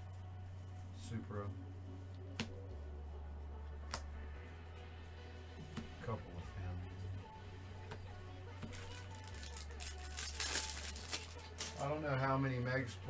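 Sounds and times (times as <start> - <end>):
background music with bass line: 0.0 - 13.0
trading cards rustling and sliding: 8.7 - 11.9.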